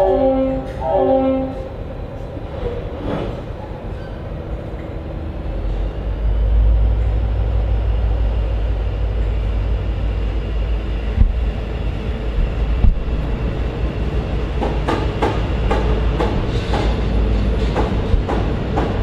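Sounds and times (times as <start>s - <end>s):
train carriages rumbling past: 0.0s - 19.0s.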